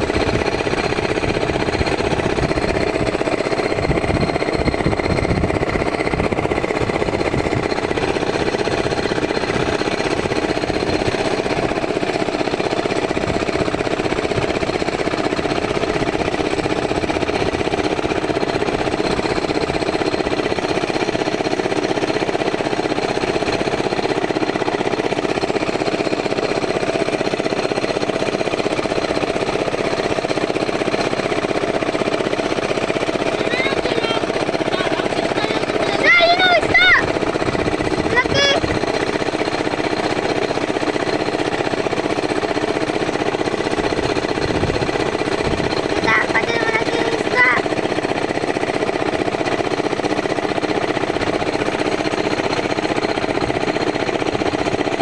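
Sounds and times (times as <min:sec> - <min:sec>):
boat engine running: 0:00.0 - 0:55.0.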